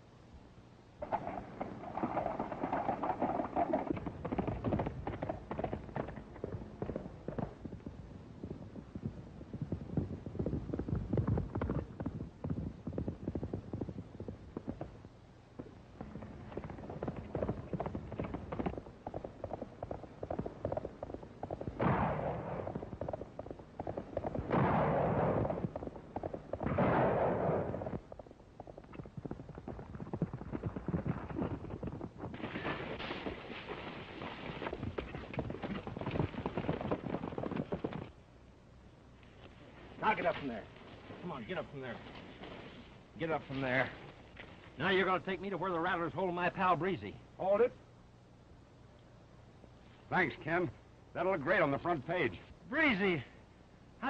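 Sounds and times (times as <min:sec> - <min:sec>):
horses galloping on dirt: 0:01.0 - 0:47.7.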